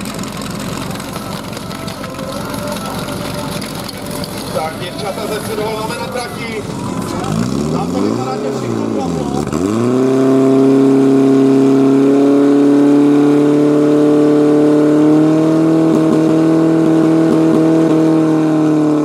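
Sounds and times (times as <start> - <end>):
pump engine running at full revs: 0.0 - 19.0.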